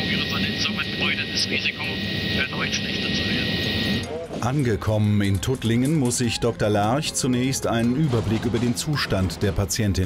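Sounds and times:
helicopter cabin noise: 0.0s - 4.3s
man speaking through headset: 0.0s - 4.7s.

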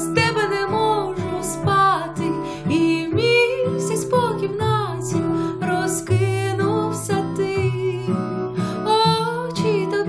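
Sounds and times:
instrumental accompaniment: 0.0s - 10.0s
woman singing slow song: 0.0s - 10.0s.

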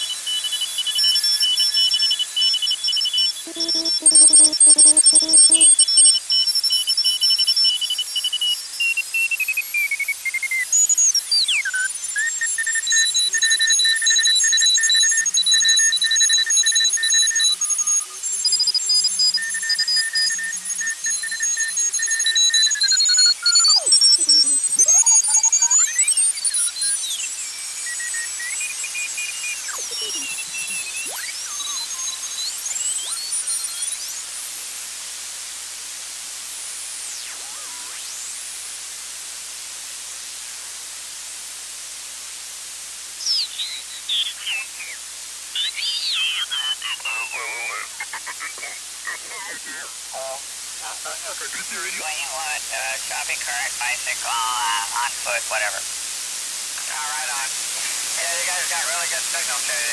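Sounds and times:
gliding radio whistles: 3.3s - 6.2s, 19.2s - 35.0s, 36.9s - 38.4s, 43.2s - 45.0s
radio hiss: 3.4s - 6.2s, 22.4s - 59.9s
morse code beeps: 3.5s - 6.1s, 20.3s - 34.0s.

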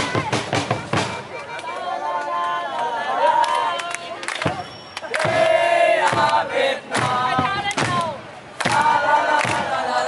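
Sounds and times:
fans shouting a chant: 1.2s - 10.0s
sharp claps: 3.4s - 9.7s.

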